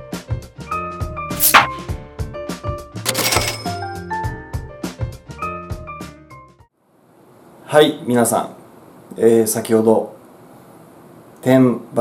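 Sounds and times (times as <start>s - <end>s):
cash register ka-ching: 3.0s - 4.0s.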